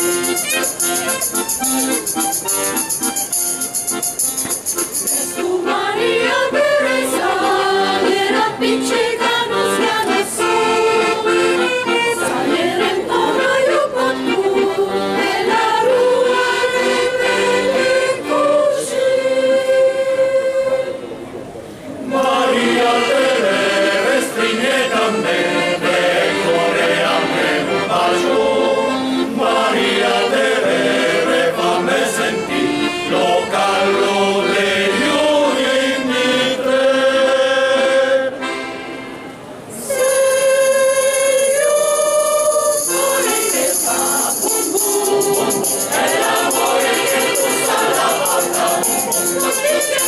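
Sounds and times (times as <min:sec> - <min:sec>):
accordion: 0:00.0 - 0:50.0
choir singing in parts: 0:05.1 - 0:21.0, 0:22.0 - 0:38.6, 0:39.7 - 0:50.0.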